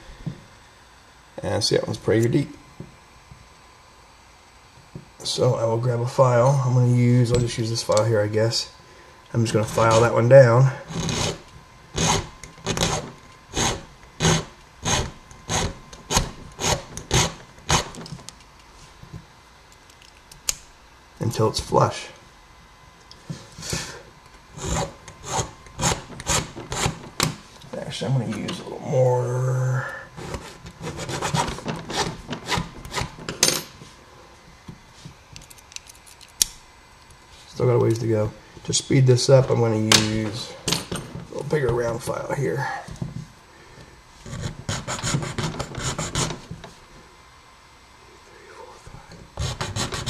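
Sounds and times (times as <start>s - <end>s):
hand file rasping on metal: 10.9s - 11.4s, 12.0s - 17.9s, 24.6s - 27.0s, 30.2s - 33.2s, 49.4s - 50.0s.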